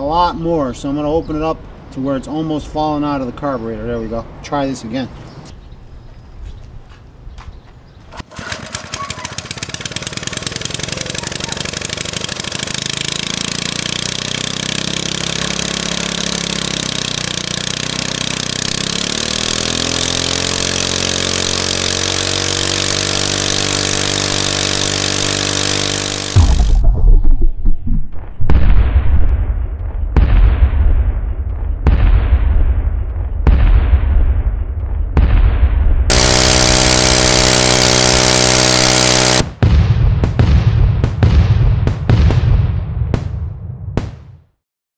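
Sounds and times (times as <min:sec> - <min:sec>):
engine low pulsing with sharp cracks: 0:06.9 - 0:27.0, 0:36.1 - 0:42.6
single-cylinder engine running: 0:08.2 - 0:26.8, 0:36.1 - 0:39.5.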